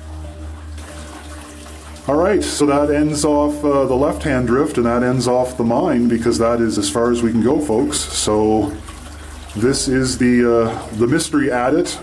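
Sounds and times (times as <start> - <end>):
stream babbling: 0.0 - 12.0.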